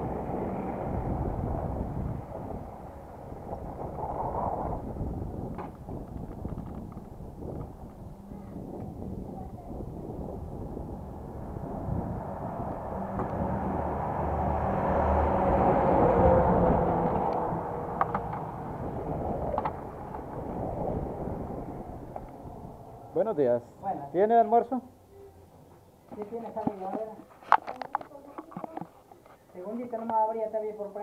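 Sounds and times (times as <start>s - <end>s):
road vehicle passing by: 0.0s - 5.5s, 9.9s - 23.8s.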